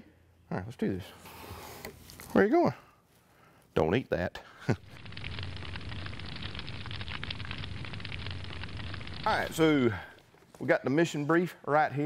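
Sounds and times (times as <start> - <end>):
flames crackling: 4.6 - 10.7.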